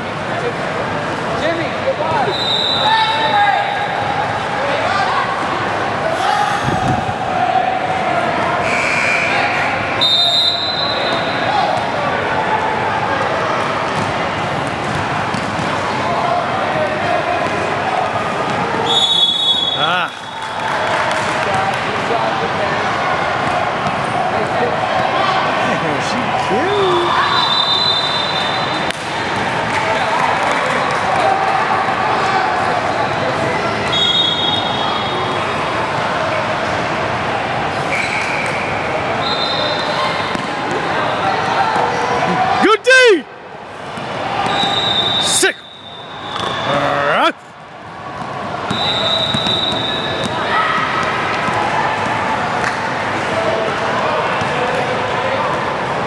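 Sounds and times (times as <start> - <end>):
spectator chatter: 0.0 - 56.0.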